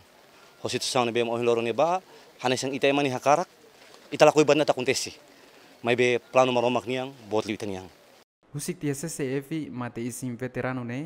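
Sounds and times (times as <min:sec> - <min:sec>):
man speaking: 0:00.6 - 0:03.5, 0:04.1 - 0:05.2, 0:05.8 - 0:11.0.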